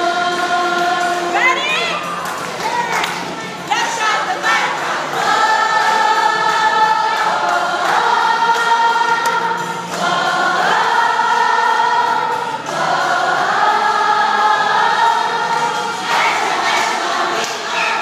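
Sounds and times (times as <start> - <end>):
accompanying music: 0.0 - 18.0
group singing a religious song: 0.0 - 18.0.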